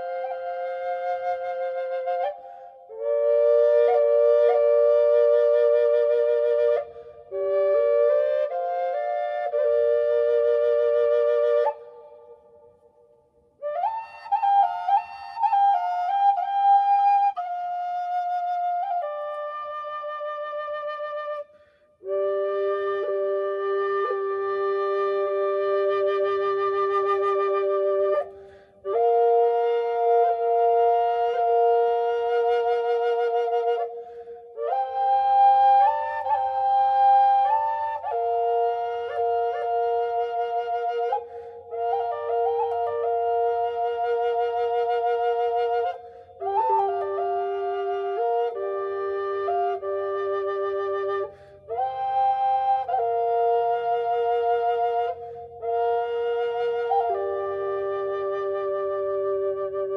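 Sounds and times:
drone flute playing: 22.1s - 59.9s.

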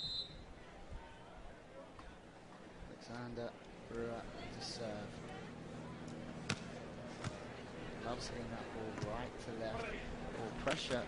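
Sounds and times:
crowd and stadium noise: 0.0s - 11.0s
hand slapping volleyball: 6.4s - 7.4s.

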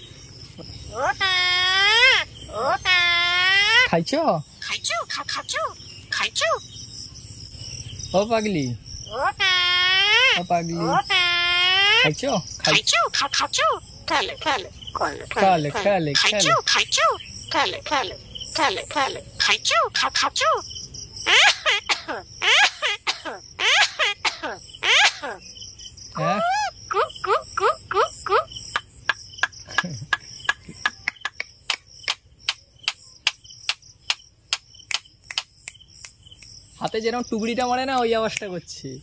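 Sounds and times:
insects droning and ticking: 0.0s - 39.0s
myna bird mimicking talk: 0.9s - 4.0s, 4.6s - 6.7s, 9.1s - 20.6s, 21.2s - 25.4s, 26.2s - 29.2s.

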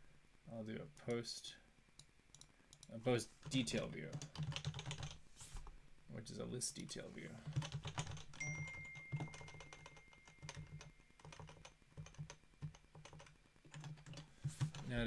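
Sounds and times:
faint high tone: 8.4s - 11.1s.

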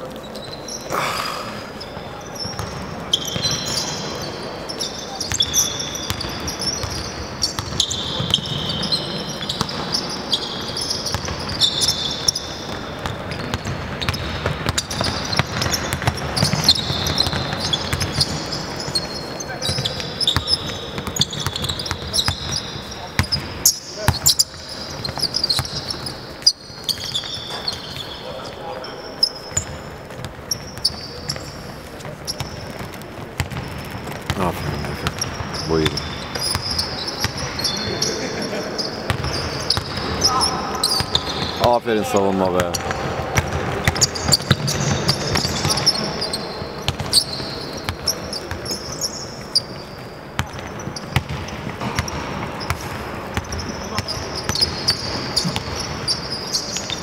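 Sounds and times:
players' voices: 0.0s - 5.7s, 34.2s - 46.8s
sneaker squeaks: 0.0s - 57.0s
basketball bouncing on hardwood: 42.7s - 45.9s.

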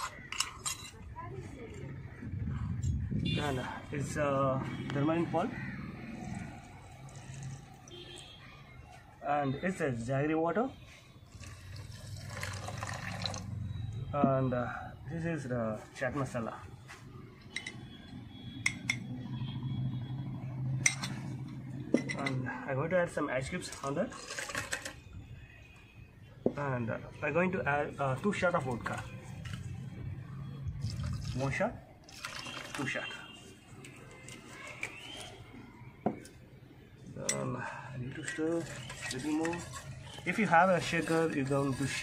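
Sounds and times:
bird chirping: 34.5s - 36.4s.

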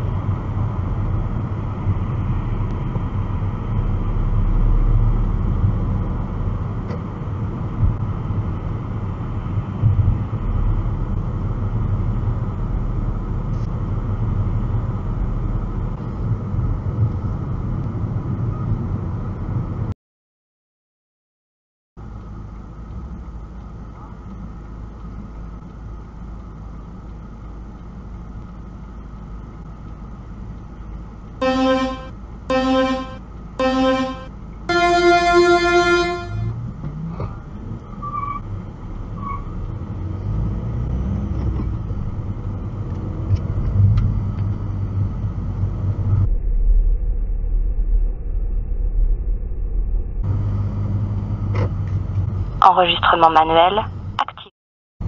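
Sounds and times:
car engine and road noise: 0.0s - 19.9s, 22.0s - 32.7s, 35.4s - 46.4s, 50.3s - 52.6s
car horns tooting: 31.4s - 36.6s.

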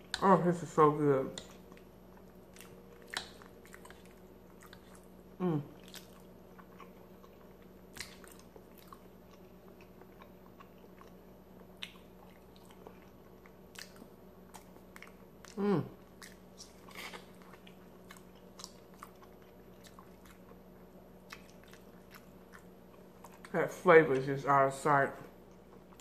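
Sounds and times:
chewing and mouth sounds: 1.3s - 23.6s
person humming mm of pleasure: 5.4s - 5.8s, 15.6s - 15.9s.

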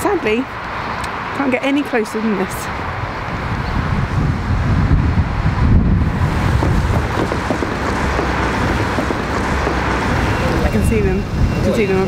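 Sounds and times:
wind buffeting microphone: 0.5s - 12.0s.

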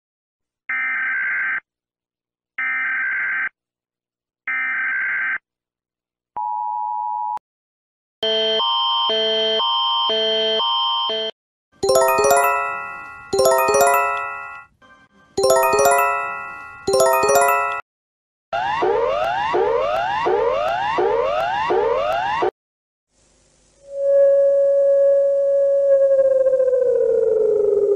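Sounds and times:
two-tone alert signal: 11.8s - 14.7s, 15.4s - 17.8s.

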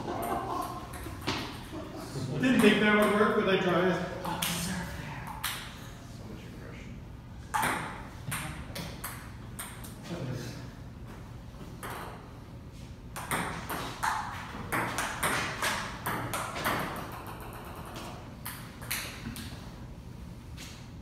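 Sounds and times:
ping-pong ball hitting paddles: 0.0s - 1.8s, 2.4s - 3.4s, 4.2s - 5.9s, 7.5s - 10.0s, 11.8s - 12.3s, 13.1s - 19.5s.

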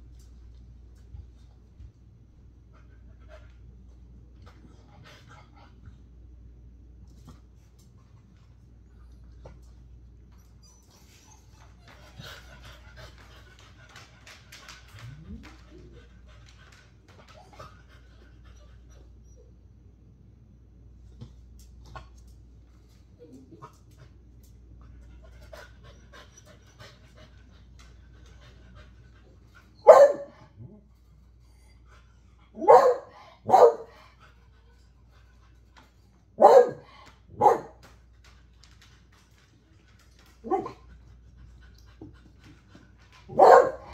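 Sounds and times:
dog whining: 10.4s - 11.8s
dog panting: 10.6s - 19.5s, 24.8s - 36.3s, 37.8s - 43.9s
dog barking: 29.8s - 30.4s, 32.6s - 34.0s, 36.4s - 37.8s, 40.4s - 40.8s, 43.3s - 43.9s.

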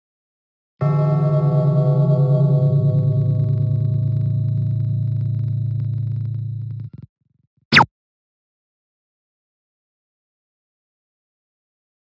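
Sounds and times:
low ringing tone with wobbling beat: 0.8s - 7.0s.

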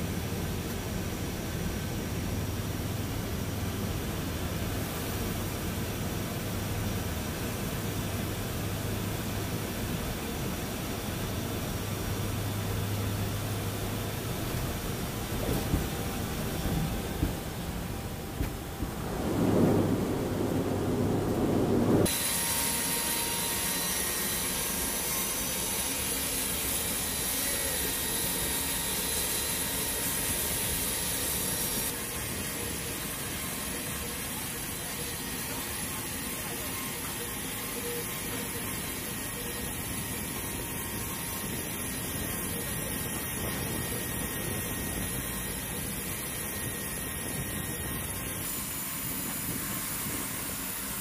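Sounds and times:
aircraft engine drone: 0.0s - 51.0s
high thin whine: 9.2s - 51.0s.

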